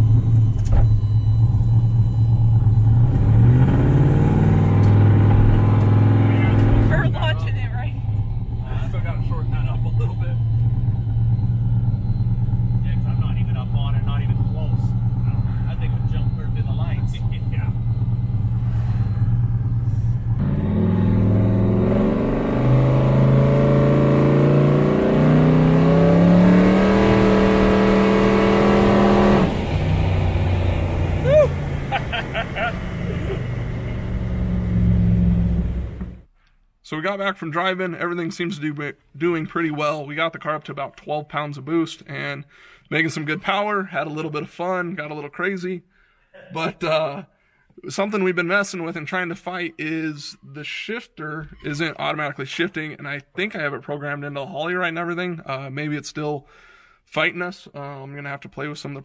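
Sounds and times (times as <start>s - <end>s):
car engine revving: 0.0s - 36.3s.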